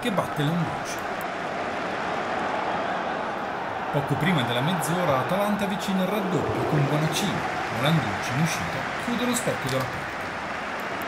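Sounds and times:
steady rushing noise: 0:04.9 - 0:09.5.

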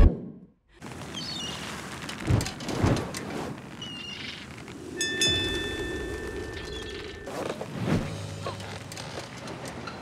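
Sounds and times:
rain-like hiss: 0:00.8 - 0:07.2
bell-like chime: 0:05.0 - 0:07.4.

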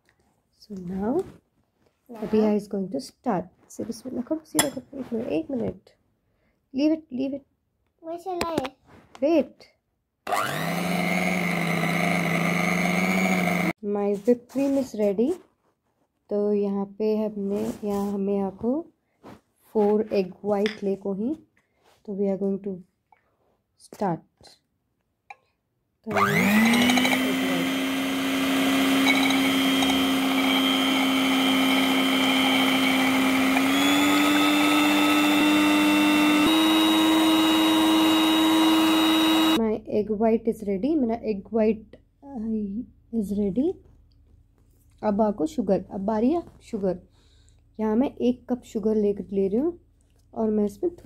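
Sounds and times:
electric hand mixer running: 0:10.3 - 0:13.8, 0:26.1 - 0:39.6.

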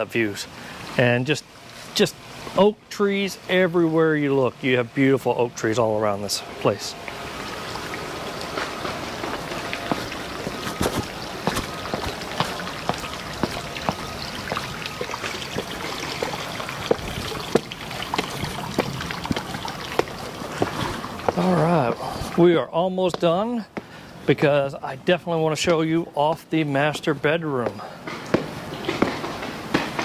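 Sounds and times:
water splashing into pool: 0:06.9 - 0:23.4.

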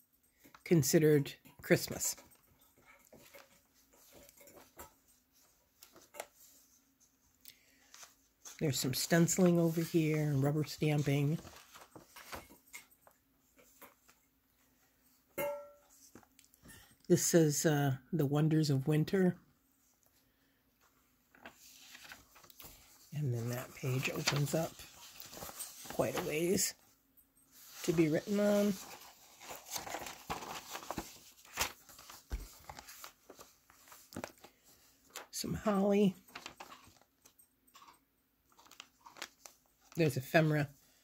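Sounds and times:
paper pages rustling: 0:03.1 - 0:12.9, 0:21.3 - 0:26.8, 0:27.6 - 0:37.4, 0:38.5 - 0:40.4
paper crinkles: 0:07.8 - 0:12.6, 0:21.3 - 0:26.8, 0:27.6 - 0:35.4, 0:36.2 - 0:37.3, 0:38.5 - 0:40.2.

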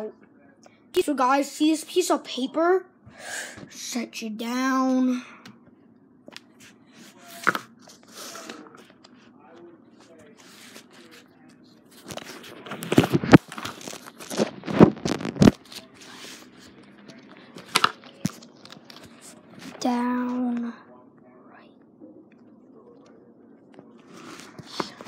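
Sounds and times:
paper rustling and crinkling: 0:10.0 - 0:19.9, 0:24.0 - 0:25.0.

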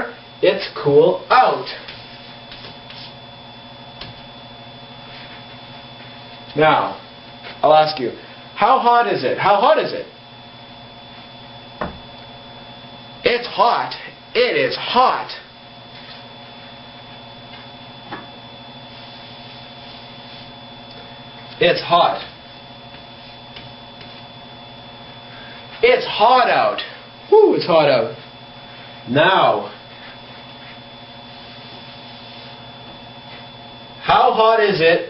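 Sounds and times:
electrical hum: 0:00.0 - 0:35.0
thin high whine: 0:00.0 - 0:35.0.

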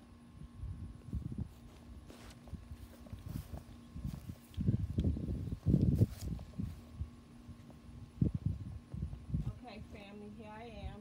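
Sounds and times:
faint steady hum: 0:00.0 - 0:11.0.

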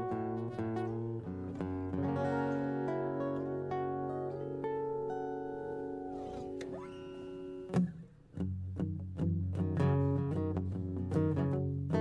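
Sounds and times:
acoustic guitars playing: 0:00.0 - 0:12.0
rhythmic chord strumming: 0:00.0 - 0:12.0.

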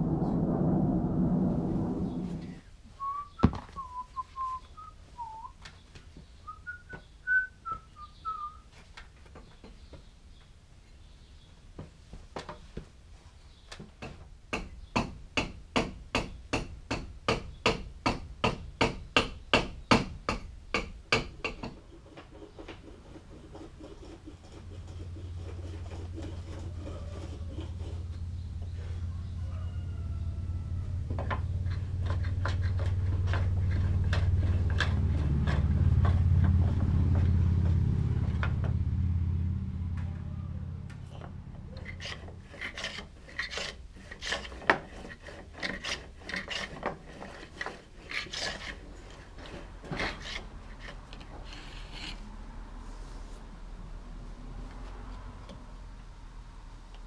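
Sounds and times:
low rumble: 0:00.0 - 0:02.8, 0:28.2 - 0:41.8
hand tool strikes on wood: 0:13.9 - 0:22.7
scraping and tapping strokes: 0:21.2 - 0:29.1, 0:31.2 - 0:38.6, 0:40.9 - 0:53.5.

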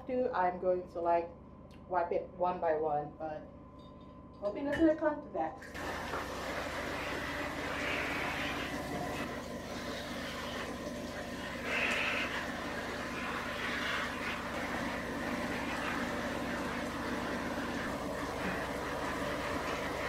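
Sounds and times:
shower head spraying water: 0:05.7 - 0:20.0.

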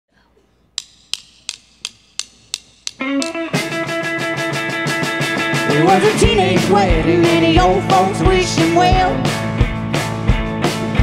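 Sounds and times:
drumstick clicks: 0:00.7 - 0:04.0.

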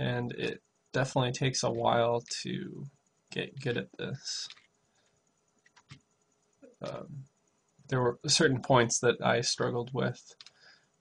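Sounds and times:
man saying um: 0:00.0 - 0:04.5, 0:06.8 - 0:07.2, 0:07.9 - 0:10.2
computer mouse clicks: 0:04.4 - 0:04.7, 0:05.6 - 0:06.1, 0:10.3 - 0:10.7.

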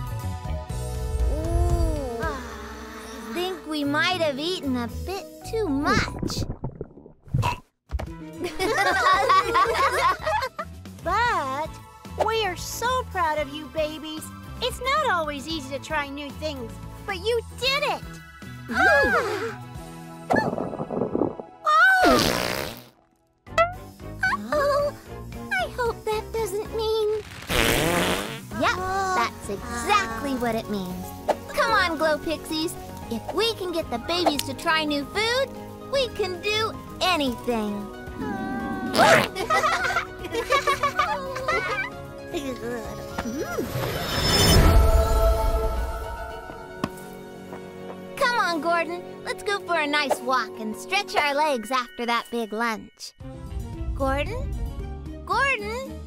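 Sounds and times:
cartoon background music: 0:00.0 - 0:06.5, 0:07.4 - 0:22.8, 0:23.5 - 0:56.0
cartoon fart sound effect: 0:22.0 - 0:23.8, 0:27.2 - 0:28.6, 0:38.8 - 0:39.5
wordless sing-song vocals: 0:44.7 - 0:46.9.

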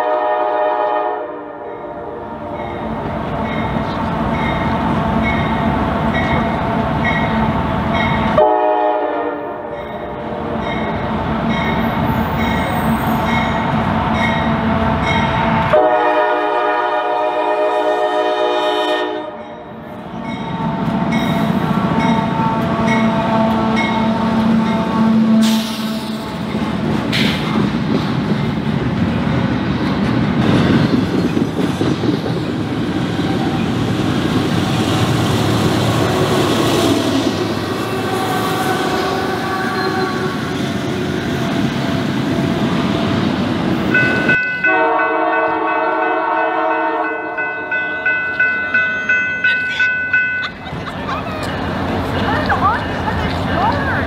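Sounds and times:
train horn: 0:00.0 - 0:02.8, 0:08.3 - 0:10.7, 0:15.4 - 0:19.5, 0:22.0 - 0:26.1, 0:36.0 - 0:40.8, 0:44.2 - 0:47.9
train cars rumbling and clattering: 0:00.0 - 0:54.0
horn chord: 0:08.4 - 0:09.6, 0:44.6 - 0:47.9.

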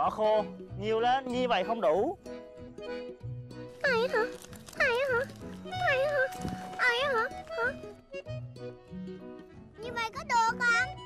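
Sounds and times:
light background music: 0:00.0 - 0:11.0
child asking a question: 0:03.8 - 0:07.8, 0:09.8 - 0:11.0.

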